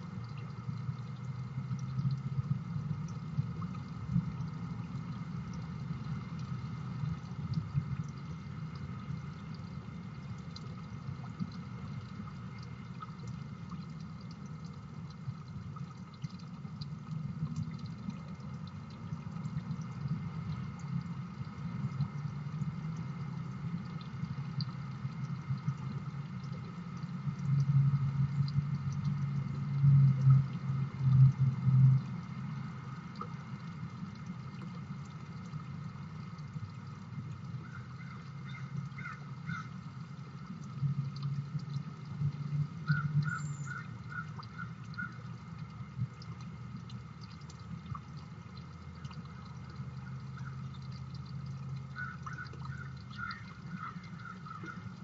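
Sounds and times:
bird calls: 52.0 - 54.8.

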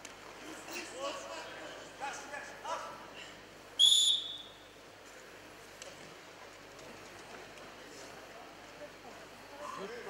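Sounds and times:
referee's whistle blast: 3.8 - 4.7.

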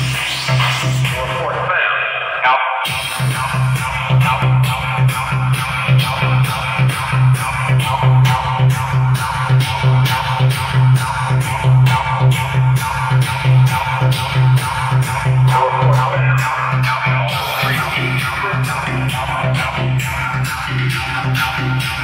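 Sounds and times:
loud electronic dance music: 0.0 - 22.0
heavy kick drum: 2.9 - 22.0.

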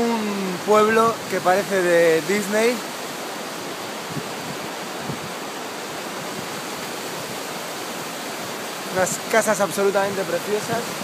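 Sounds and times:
river water flowing: 0.0 - 11.0.

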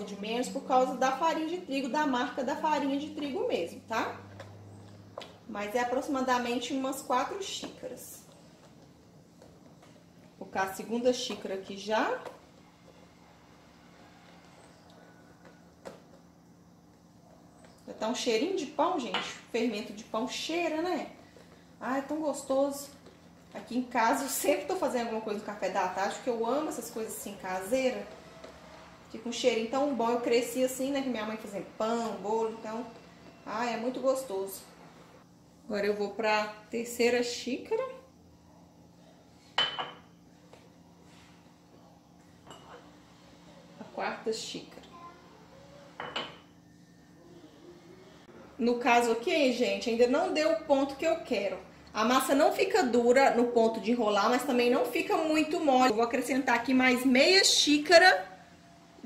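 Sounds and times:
faint low hum: 0.0 - 59.0.

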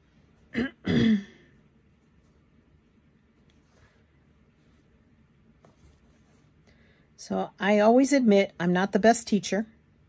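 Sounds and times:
woman clearing her throat: 0.5 - 1.5.

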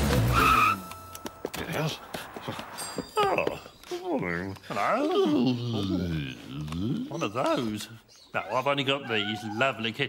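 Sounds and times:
cartoon tyres screeching: 0.2 - 0.9.

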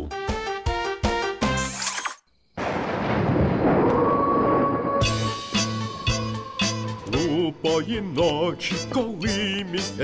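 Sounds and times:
rolling thunder rumble: 2.6 - 8.2.

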